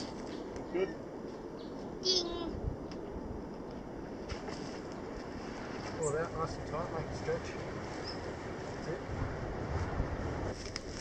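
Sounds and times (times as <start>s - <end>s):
wind on microphone: 2.2s - 4.3s, 6.6s - 11.0s.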